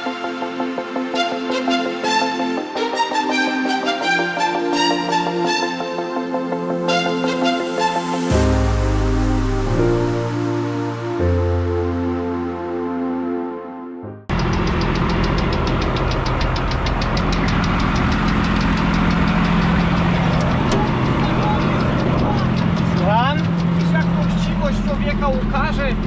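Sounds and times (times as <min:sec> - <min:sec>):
music: 0:00.0 - 0:15.5, 0:17.1 - 0:26.0
fast even ticking: 0:14.3 - 0:26.0
harvester engine running: 0:14.3 - 0:26.0.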